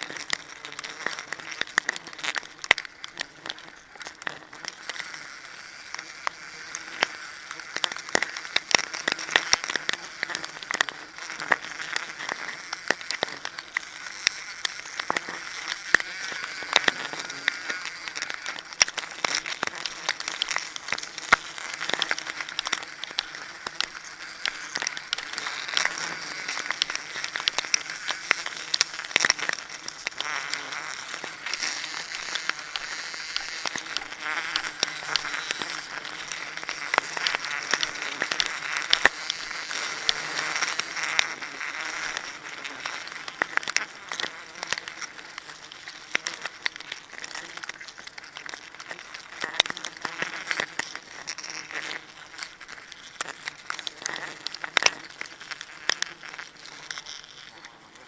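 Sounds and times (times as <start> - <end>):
gloved hands scraping tree bark: 0.0 - 58.0
insects buzzing: 0.0 - 58.0
plastic sack crinkling: 6.3 - 57.8.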